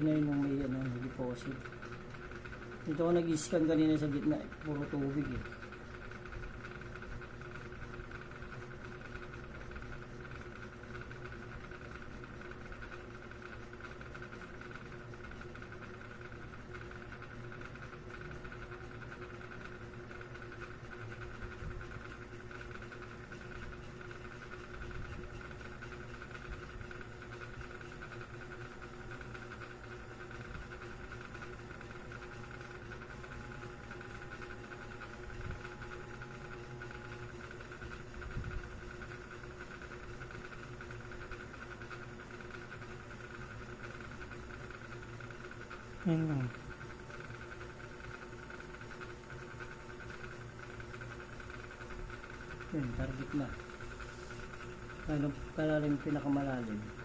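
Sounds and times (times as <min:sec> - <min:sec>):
room hum and hiss: 0:00.0 - 0:57.0.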